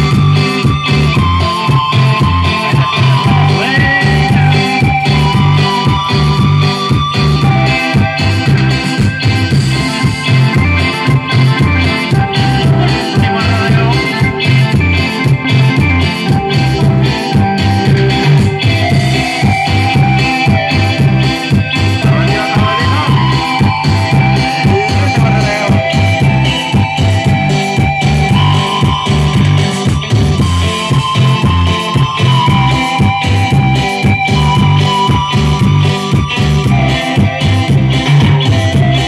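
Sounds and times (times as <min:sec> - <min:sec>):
bass beat: 0:00.0 - 0:39.0
electric guitar: 0:00.0 - 0:39.0
electric keyboard melody: 0:00.0 - 0:39.0.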